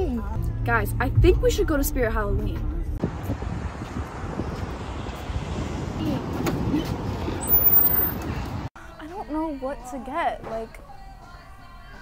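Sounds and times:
passing traffic rumble: 0.3 - 8.7.

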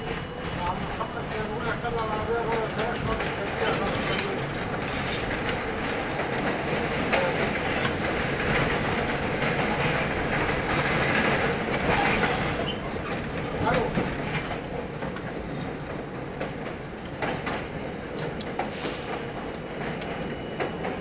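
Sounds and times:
train rumbling on elevated track: 0.0 - 21.0.

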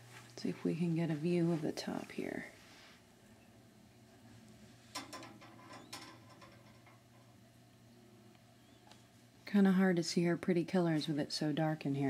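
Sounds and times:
low steady hum: 0.0 - 12.0
faint clicks and rattles: 4.9 - 7.5.

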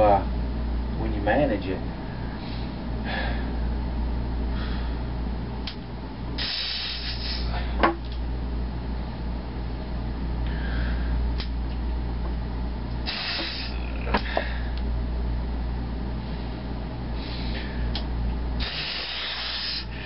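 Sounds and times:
steady low hum: 0.0 - 20.0
man breathing hard: 2.2 - 3.7, 4.5 - 5.2, 6.4 - 7.8, 10.4 - 11.3, 13.0 - 14.8, 16.2 - 18.0, 18.6 - 20.0
hissing exhalations through teeth: 6.4 - 7.7, 13.0 - 14.4, 18.6 - 20.0.

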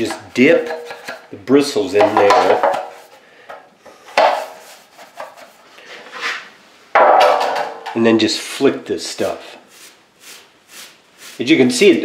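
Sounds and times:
brush knocking against container: 2.0 - 3.0
brush scraping: 4.2 - 6.5, 9.2 - 12.0.

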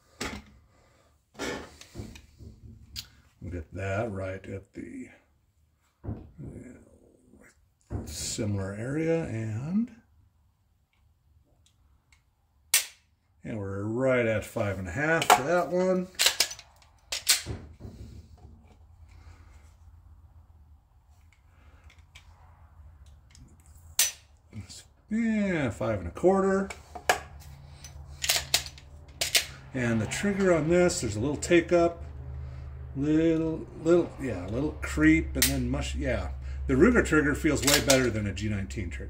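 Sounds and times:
pistol clicks: 12.7 - 13.0.

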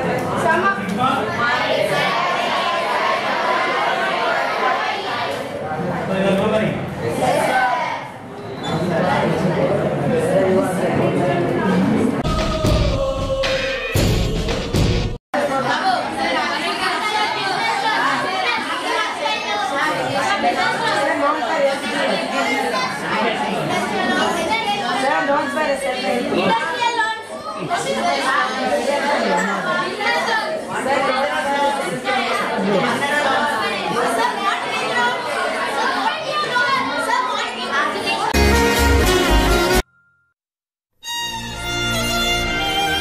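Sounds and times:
children chattering: 0.0 - 12.2, 15.4 - 38.4.

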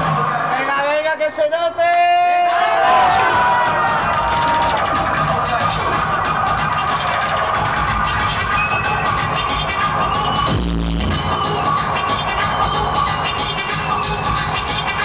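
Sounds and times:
hardcore electronic music: 0.0 - 1.1, 2.8 - 15.0.

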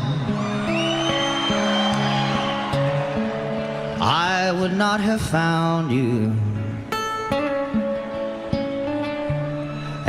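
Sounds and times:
slow country ballad band: 0.0 - 10.0.

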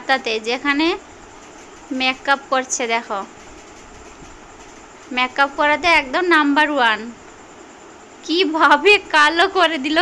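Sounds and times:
person speaking: 0.0 - 4.2, 4.8 - 7.2
steady background hiss: 0.0 - 10.0.

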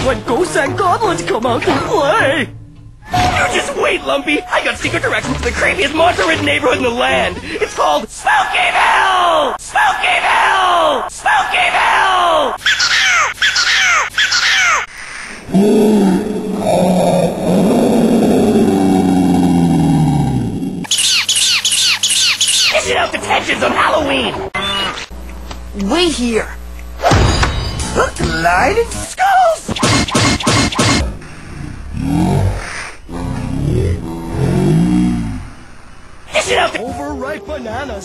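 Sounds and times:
high falling chirps: 20.9 - 22.9.

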